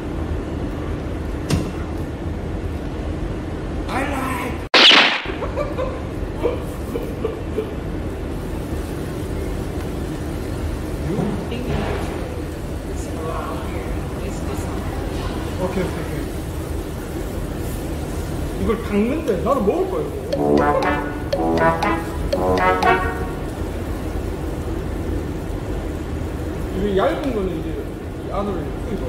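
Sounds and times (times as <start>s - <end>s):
short loud burst: 4.8s - 5.4s.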